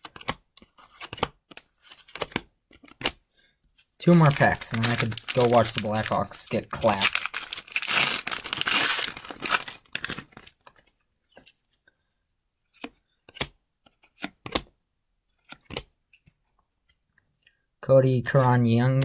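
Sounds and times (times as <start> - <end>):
wrapper tearing and crinkling: 4.0 - 10.4.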